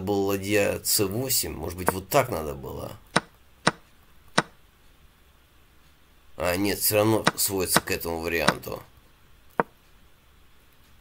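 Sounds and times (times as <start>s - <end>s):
wooden chess piece clacks: 3.1s - 4.6s, 7.2s - 8.7s, 9.5s - 9.8s.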